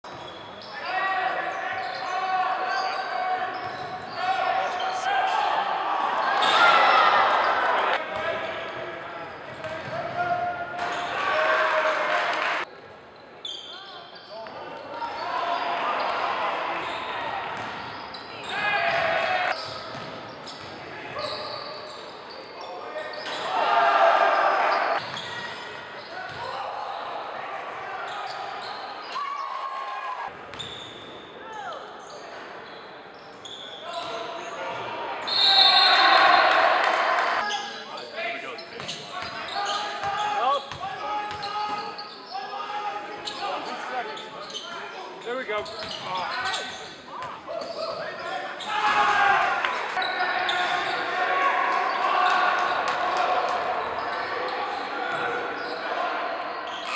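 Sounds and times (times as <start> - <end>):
crowd cheering: 2.2 - 8.2, 10.8 - 12.7, 23.4 - 25.0, 35.2 - 37.5, 47.6 - 56.6.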